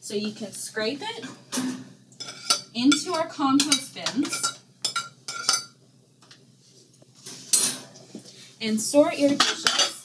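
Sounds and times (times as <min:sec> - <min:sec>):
cutlery clinking on ceramic plate: 0:01.6 - 0:05.8, 0:09.4 - 0:10.0.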